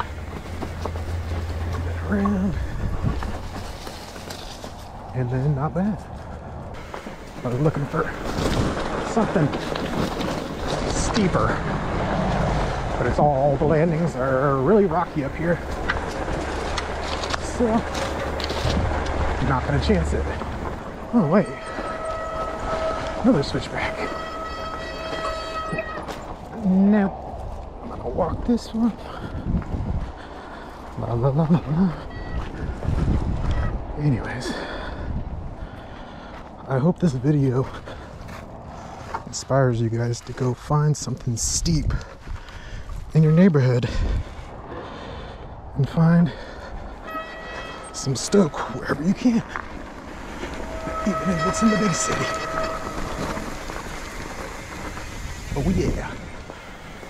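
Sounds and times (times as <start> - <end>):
mountain bike on rocky trail: 0.0 - 57.0.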